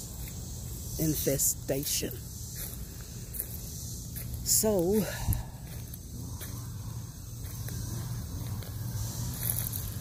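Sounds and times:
steady low rumble: 1.6s - 10.0s.

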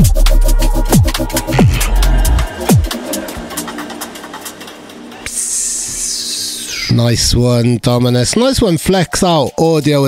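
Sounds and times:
electronic drum and bass music: 0.0s - 7.0s
hissing noise sweep falling in pitch: 0.5s - 6.9s.

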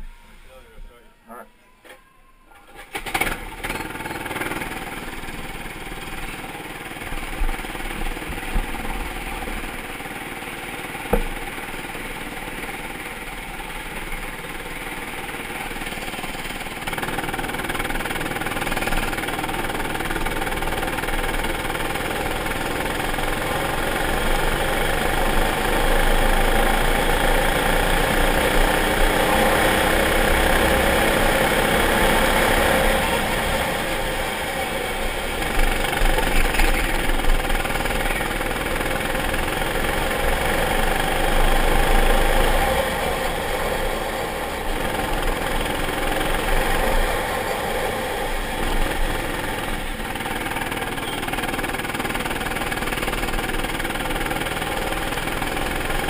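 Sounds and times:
go-kart engine running: 2.6s - 56.0s.

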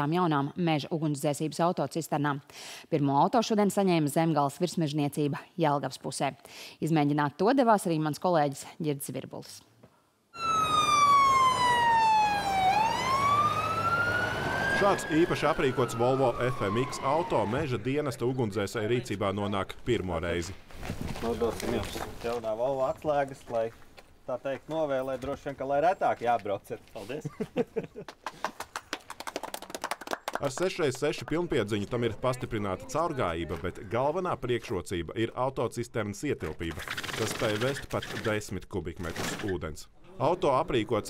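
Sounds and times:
fire truck siren wailing: 10.4s - 18.4s
small group applauding: 28.0s - 31.4s.

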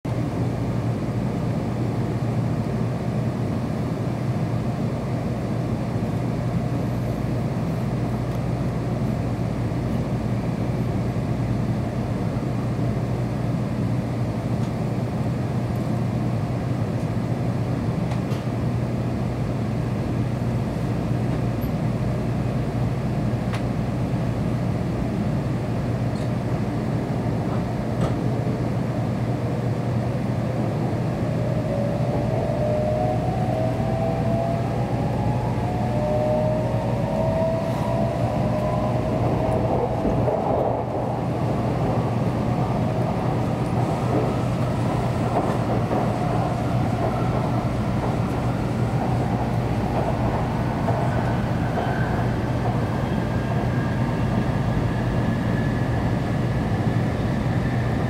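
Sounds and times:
train cabin low hum: 0.0s - 58.0s
rising motor whine: 31.4s - 40.2s.

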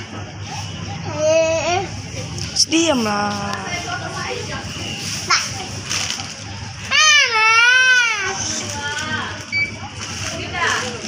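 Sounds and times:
child's high-pitched drawn-out voice: 1.0s - 2.0s.

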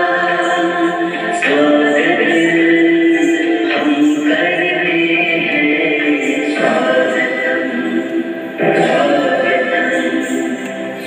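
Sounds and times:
dance song with chorus singing: 0.0s - 11.0s.

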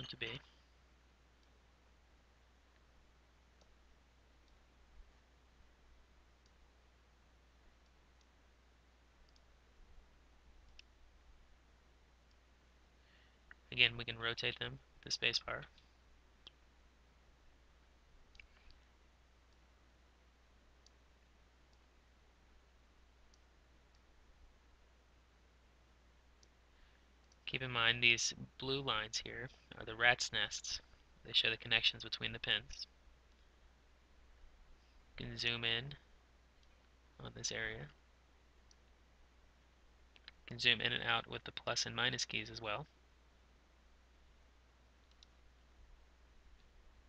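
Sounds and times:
faint low hum: 0.0s - 47.0s
computer mouse clicks: 9.2s - 9.5s, 10.6s - 11.0s, 18.3s - 18.8s, 45.0s - 45.4s.

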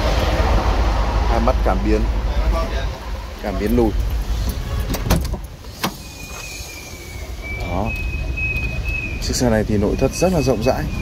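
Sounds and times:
high-pitched electronic beep: 6.1s - 11.0s.

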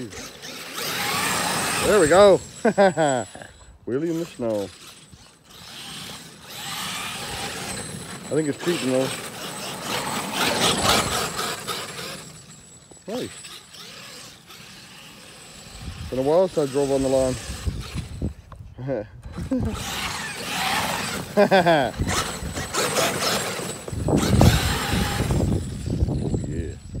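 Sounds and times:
tires churning through snow: 0.0s - 18.5s, 19.3s - 26.8s
electric toy truck motor: 0.0s - 18.6s, 19.2s - 27.0s.

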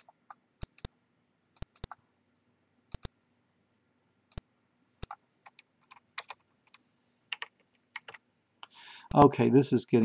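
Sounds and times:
typing on computer keyboard: 0.0s - 0.9s, 1.6s - 2.0s, 5.0s - 8.2s.

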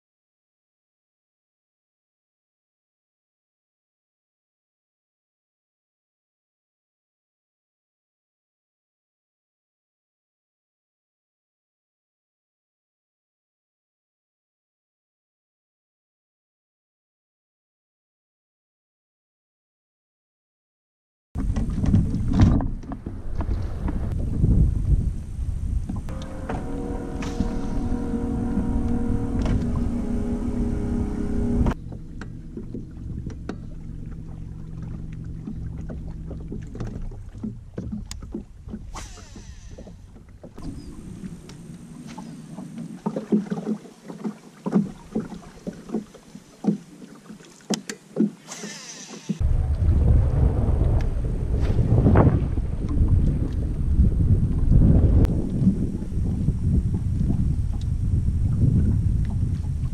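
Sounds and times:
water against hull: 21.4s - 59.9s
electric trolling motor hum: 26.1s - 38.6s, 39.2s - 43.1s
footsteps on boat deck: 31.6s - 38.9s, 39.7s - 48.5s.

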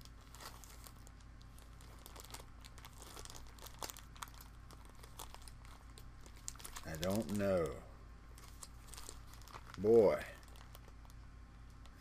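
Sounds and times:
plastic packaging crinkling: 0.0s - 11.2s
low steady hum: 0.0s - 12.0s.

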